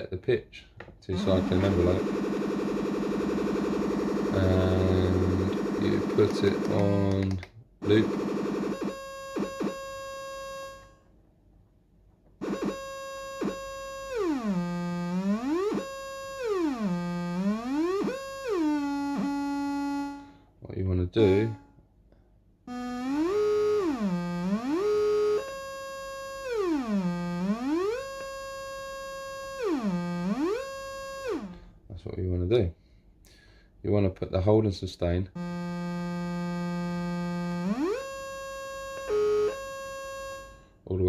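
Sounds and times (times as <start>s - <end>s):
synthesizer note swooping in pitch: 1.2s - 7.0s, 12.4s - 20.3s, 22.7s - 31.6s, 35.4s - 40.6s.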